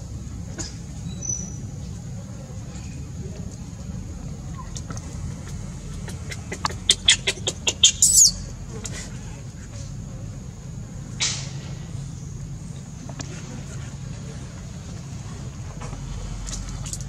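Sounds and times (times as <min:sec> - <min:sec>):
baby monkey squealing: 0:06.8 - 0:08.5.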